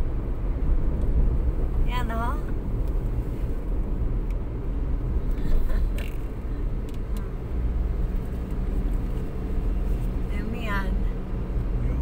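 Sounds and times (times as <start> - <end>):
car road rumble inside cabin: 0.0 - 12.0.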